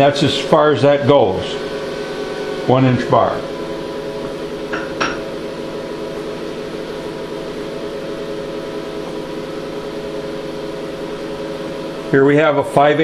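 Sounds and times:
cooling fans humming: 0:00.0 - 0:13.0.

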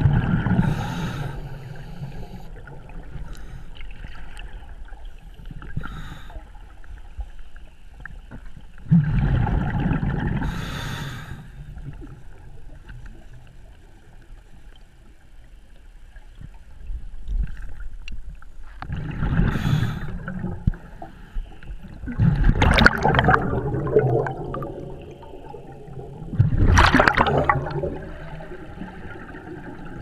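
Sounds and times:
scuba regulator bubbles gurgling: 0:00.0 - 0:06.9, 0:08.8 - 0:14.2, 0:18.9 - 0:30.0.

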